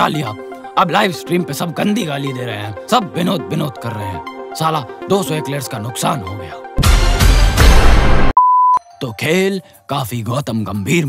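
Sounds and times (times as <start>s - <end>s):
sound effect music burst: 6.8s - 8.3s
censor bleep tone: 8.4s - 8.8s.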